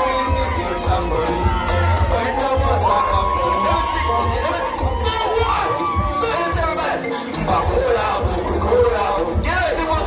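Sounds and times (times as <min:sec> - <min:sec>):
crowd cheering and shouting: 0:00.0 - 0:10.0
loud music with bass beat: 0:00.0 - 0:10.0.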